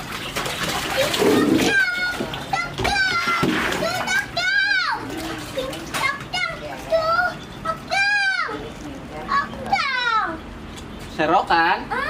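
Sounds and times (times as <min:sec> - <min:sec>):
water sloshing: 0:00.0 - 0:11.2.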